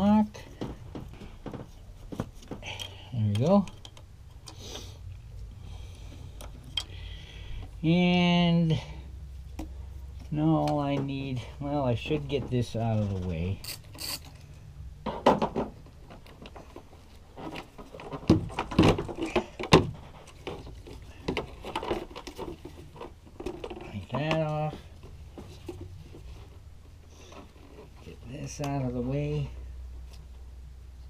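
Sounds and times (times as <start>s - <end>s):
steady low hum: 0.0s - 31.0s
clicks and knocks of plastic and metal: 0.4s - 4.6s, 15.0s - 26.6s.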